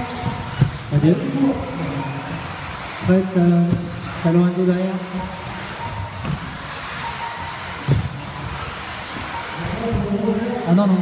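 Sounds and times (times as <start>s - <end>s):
electric toy car motor whine: 0.0s - 11.0s.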